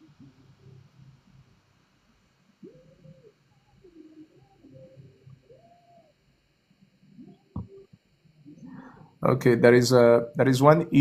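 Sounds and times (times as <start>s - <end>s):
faint cooing bird calls: 2.5s - 6.4s.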